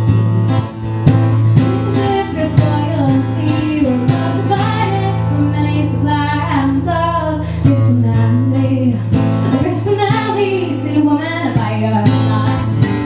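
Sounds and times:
strummed acoustic guitar: 0.0 - 13.0
woman singing: 1.5 - 13.0.

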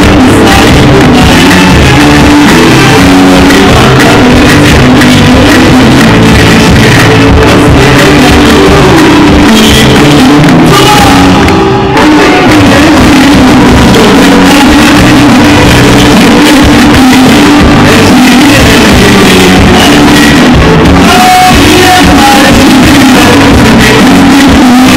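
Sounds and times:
crowd singing along: 0.0 - 16.7, 17.6 - 23.7
live pop band: 0.0 - 24.9
man singing into microphone: 0.0 - 24.9.

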